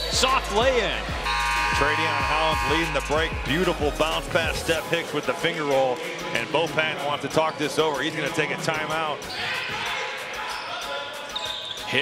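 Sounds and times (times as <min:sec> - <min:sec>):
crowd noise: 0:00.0 - 0:12.0.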